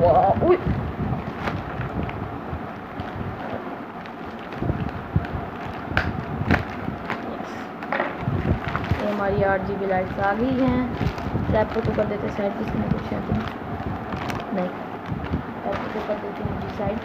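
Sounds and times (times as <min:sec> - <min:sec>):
plastic mailer bag crinkling: 0:01.2 - 0:02.2, 0:02.9 - 0:07.4, 0:08.2 - 0:17.0.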